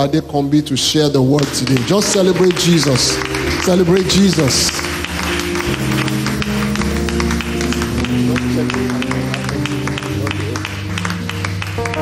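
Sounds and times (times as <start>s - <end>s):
keyboard and bass chords: 0.0s - 12.0s
hand-clapping: 1.3s - 12.0s.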